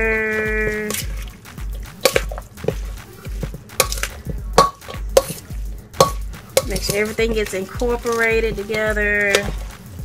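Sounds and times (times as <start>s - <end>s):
utensil stirring wet salad: 0.0s - 10.0s
utensil clinking on metal bowl: 0.5s - 1.4s, 2.0s - 9.8s.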